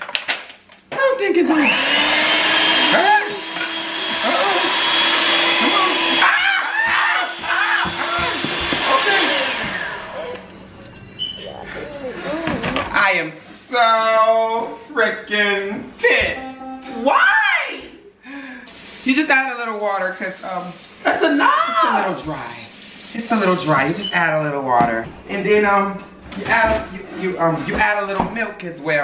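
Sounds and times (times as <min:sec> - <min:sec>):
electric hand mixer running: 0:01.5 - 0:10.7
shrieks and yells: 0:05.6 - 0:10.5, 0:21.3 - 0:22.0
loud drawn-out vocal cries: 0:05.6 - 0:10.6, 0:11.4 - 0:13.0.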